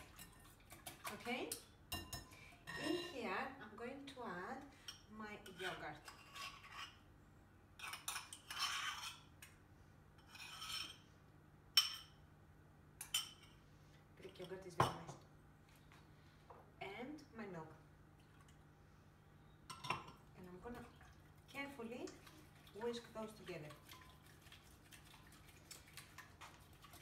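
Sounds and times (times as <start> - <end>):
eggs whisked in glass bowl: 0.0 - 1.3, 21.1 - 27.0
spoon scraping into bowl: 2.6 - 3.3, 5.4 - 7.0, 7.8 - 9.3, 10.2 - 11.1.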